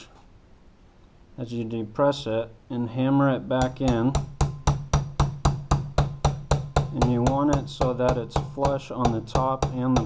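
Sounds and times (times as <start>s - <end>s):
hammer tapping steel pin punch: 3.6s - 10.0s.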